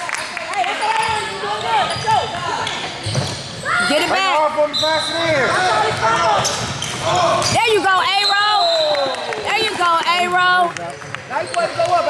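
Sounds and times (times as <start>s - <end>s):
voices talking and calling out: 0.5s - 11.9s.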